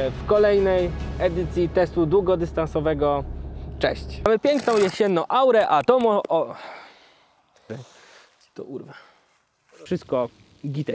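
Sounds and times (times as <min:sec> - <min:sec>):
man speaking: 0:03.8 - 0:06.5.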